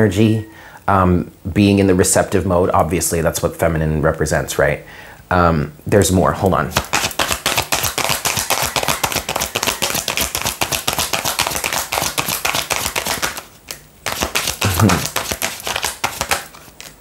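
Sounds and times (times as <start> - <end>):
cards being shuffled: 6.7 - 17.0.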